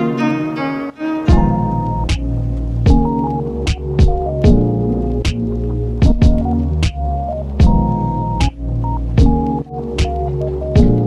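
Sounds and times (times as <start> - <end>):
background music with chords: 0.0 - 11.0.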